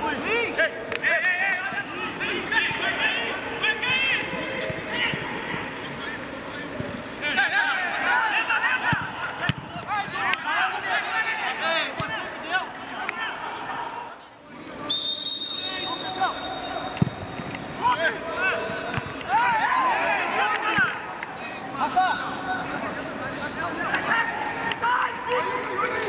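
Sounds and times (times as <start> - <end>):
players shouting: 0.0 - 5.8, 7.2 - 26.0
referee's whistle: 14.8 - 17.4.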